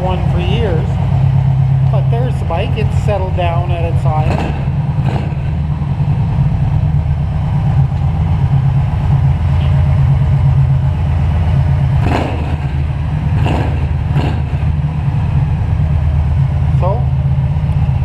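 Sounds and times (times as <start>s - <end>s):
motorcycle engine idling: 0.0s - 18.0s.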